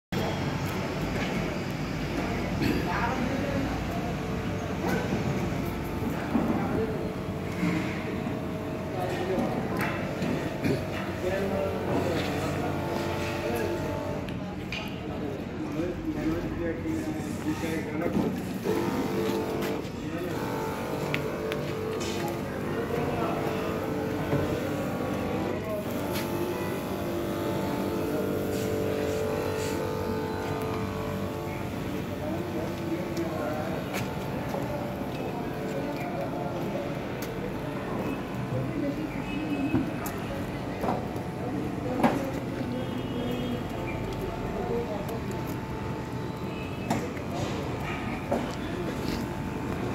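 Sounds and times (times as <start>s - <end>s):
indistinct voices talking: 0.2s - 49.9s.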